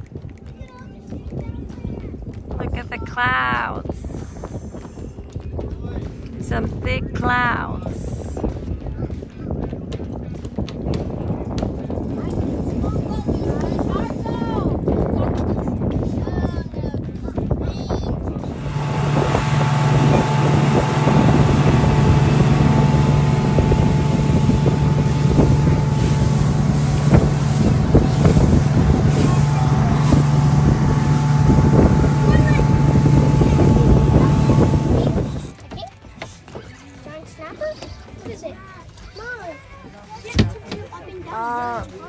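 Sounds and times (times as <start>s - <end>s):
wind buffeting microphone: 0.0s - 36.1s
boat engine running: 2.1s - 8.6s, 18.1s - 38.4s
water rushing along hull: 18.2s - 35.7s.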